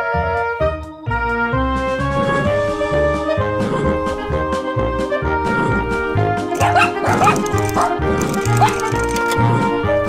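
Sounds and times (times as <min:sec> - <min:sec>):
dog barks: 0:06.6 - 0:08.9.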